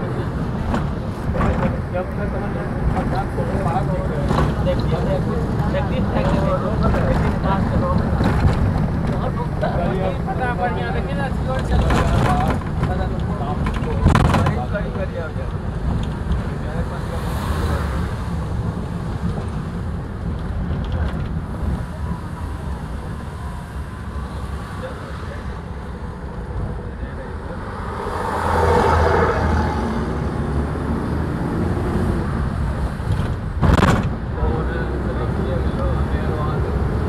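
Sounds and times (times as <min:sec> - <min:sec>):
road rumble inside vehicle: 0:00.0 - 0:37.0.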